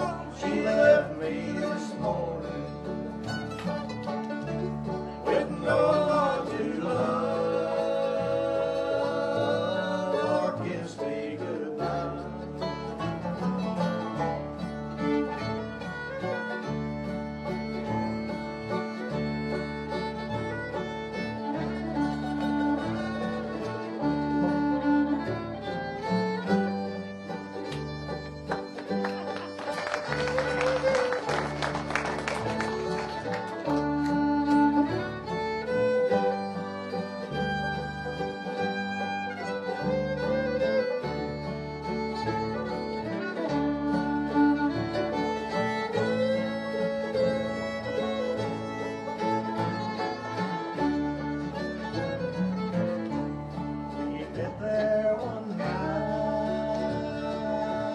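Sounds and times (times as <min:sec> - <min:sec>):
bluegrass band playing: 0:00.0 - 0:57.9
fiddle: 0:00.0 - 0:57.9.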